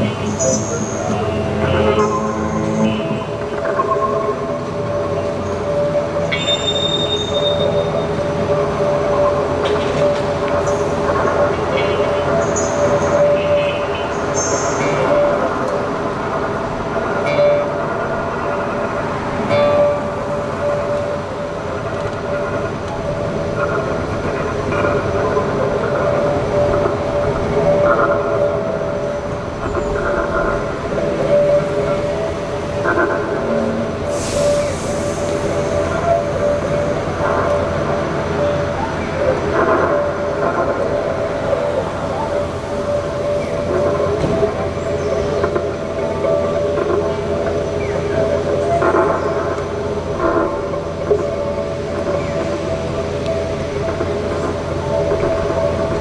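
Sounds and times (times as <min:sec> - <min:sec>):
string droning tones: 0:00.0 - 0:56.0.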